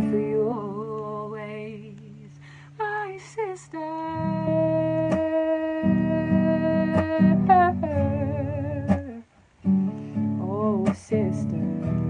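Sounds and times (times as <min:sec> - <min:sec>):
strummed acoustic guitar: 0:00.0 - 0:01.8, 0:04.1 - 0:12.0.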